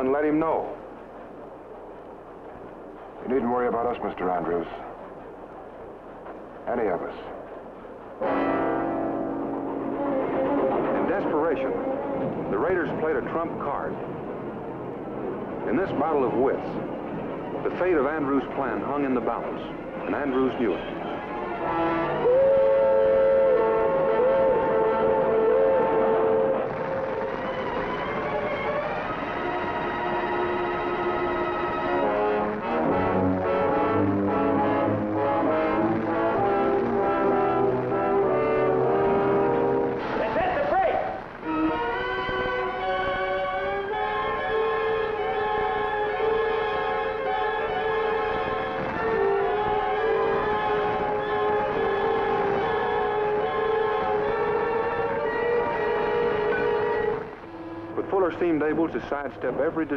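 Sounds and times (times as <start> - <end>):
orchestral music led by brass: 8.2 - 12.8, 20.1 - 59.9.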